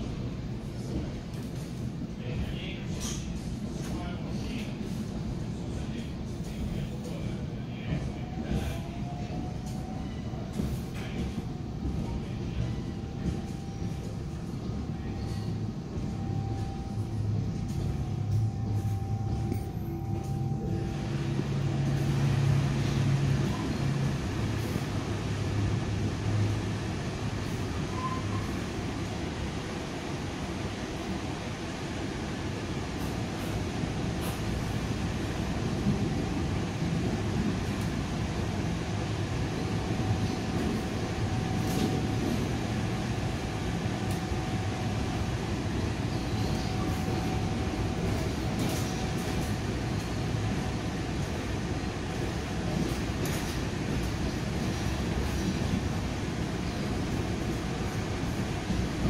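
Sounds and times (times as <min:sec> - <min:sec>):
train coach rumble: 0:00.0 - 0:59.0.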